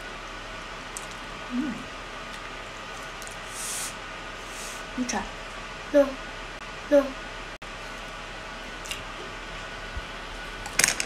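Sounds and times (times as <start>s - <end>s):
breathy puffs of air: 3.4s - 4.9s
background hiss: 3.4s - 5.2s.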